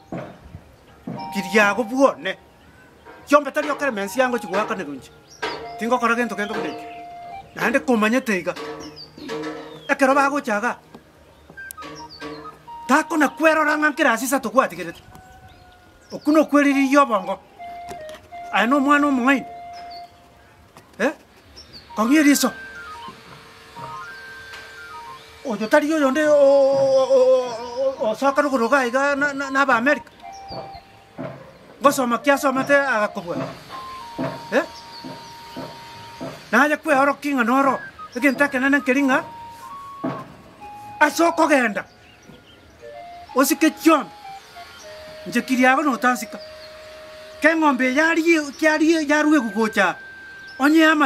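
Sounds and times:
quiet background music: 0:00.0 - 0:20.7, 0:21.8 - 0:51.0
person speaking loudly: 0:01.2 - 0:02.4, 0:12.8 - 0:15.0, 0:22.0 - 0:22.6, 0:25.4 - 0:30.1, 0:47.4 - 0:50.0.

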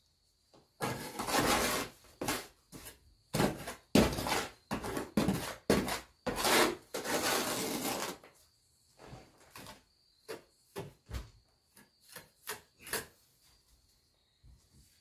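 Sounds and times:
trowel scraping wet mortar: 0:00.8 - 0:08.3, 0:12.0 - 0:13.2.

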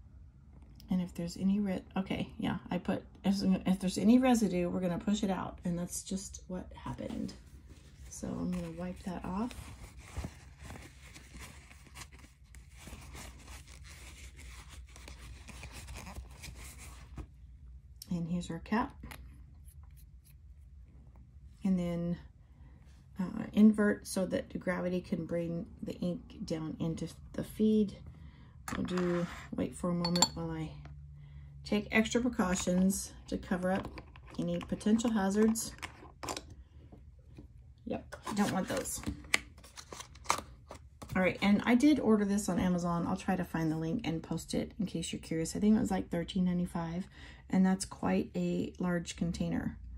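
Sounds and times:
paper towel rustling: 0:07.1 - 0:17.4.

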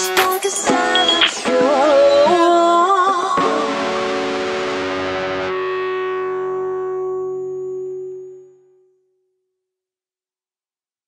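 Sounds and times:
distorted electric guitar: 0:00.0 - 0:02.7, 0:03.4 - 0:08.2.

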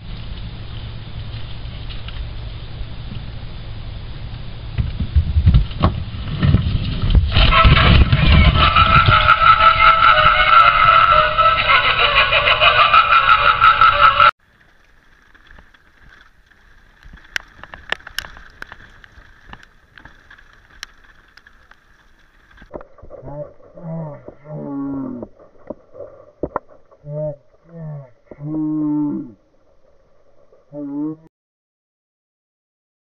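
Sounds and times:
clown prop voice-like sound: 0:07.3 - 0:14.3, 0:23.2 - 0:25.3, 0:27.0 - 0:29.4, 0:30.7 - 0:31.3
faint clicks: 0:14.6 - 0:22.9.

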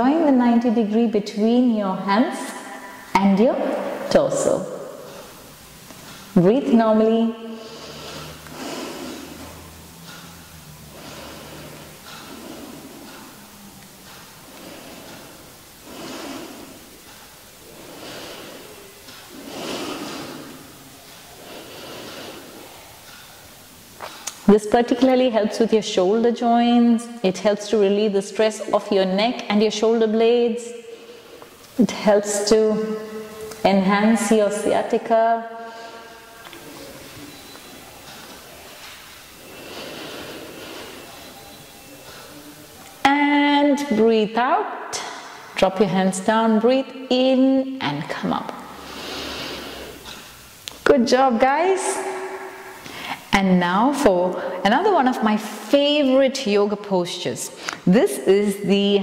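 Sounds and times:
steady hiss: 0:01.6 - 0:56.3
woman breathing softly: 0:07.6 - 0:23.5, 0:38.0 - 0:42.6.

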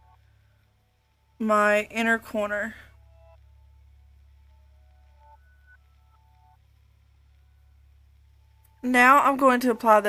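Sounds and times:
faint background music: 0:00.0 - 0:10.0
steady low hum: 0:00.0 - 0:10.0.

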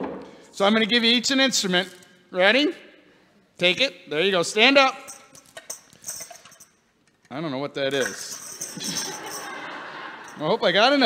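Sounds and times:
hand percussion jingling: 0:04.8 - 0:06.9, 0:07.9 - 0:10.5.

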